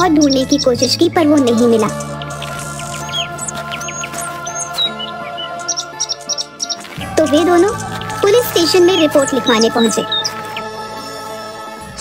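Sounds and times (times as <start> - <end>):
high bird chirps: 0.0 - 10.8
music of sustained tones: 0.0 - 12.0.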